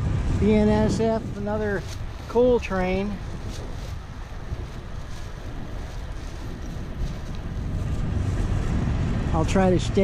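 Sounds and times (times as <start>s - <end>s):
road traffic rumble: 0.0s - 10.0s
wind buffeting microphone: 0.0s - 10.0s.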